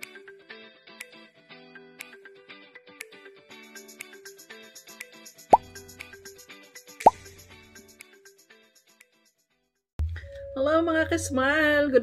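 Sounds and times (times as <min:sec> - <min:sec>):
light background music: 0:00.0 - 0:09.4, 0:10.0 - 0:12.0.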